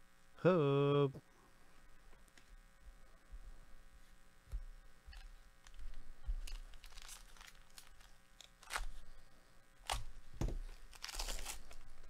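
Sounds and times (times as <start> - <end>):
plastic wrapper crinkling: 5.1 - 9.2, 9.8 - 12.0
plastic wrapper ripping: 5.6 - 9.0, 9.8 - 12.0.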